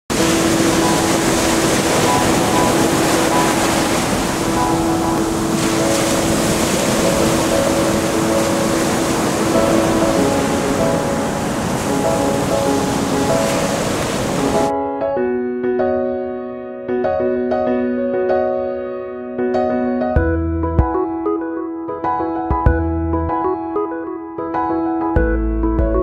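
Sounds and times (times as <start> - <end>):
ocean surf on beach: 0.1 - 14.7
background music of held notes: 0.1 - 26.0.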